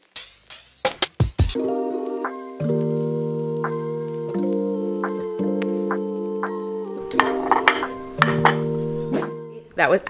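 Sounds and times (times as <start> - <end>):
background music with guitar: 1.6 - 9.7
metal fork clinking on plate: 7.2 - 8.6.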